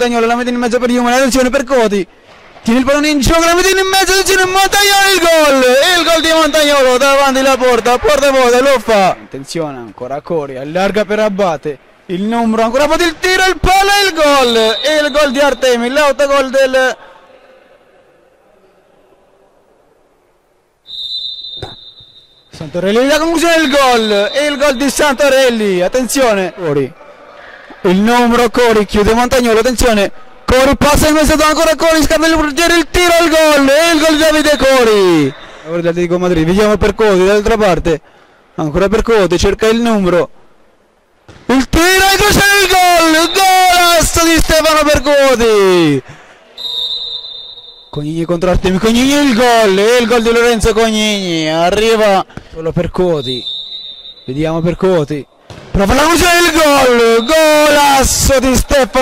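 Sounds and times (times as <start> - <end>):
faint hall noise: 0.0 - 59.0
referee's whistle blast: 5.4 - 7.3, 14.0 - 15.9, 20.9 - 25.3, 33.6 - 35.7, 42.0 - 45.6, 46.6 - 48.1, 53.1 - 55.0, 56.2 - 58.3.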